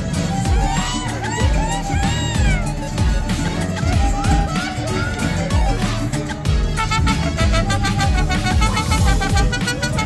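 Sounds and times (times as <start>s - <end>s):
strummed guitars: 0.0s - 10.0s
trumpet: 0.0s - 10.0s
violins: 0.0s - 10.0s.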